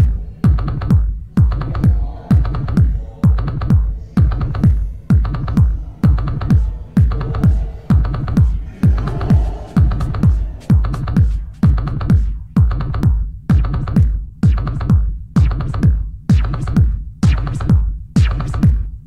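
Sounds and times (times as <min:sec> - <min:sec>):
drum machine kick: 0:00.0 - 0:19.0.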